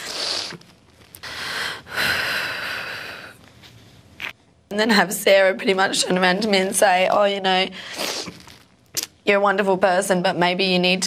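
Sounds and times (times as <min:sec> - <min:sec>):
woman breathing heavily while crying: 0:01.2 - 0:03.4.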